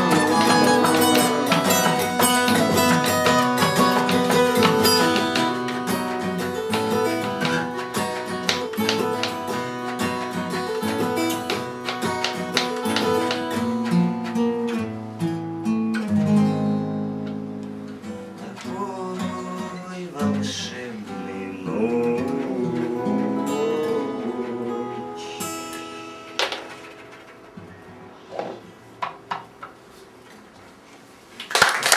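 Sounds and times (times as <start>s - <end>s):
acoustic guitars strumming: 0.0s - 31.1s.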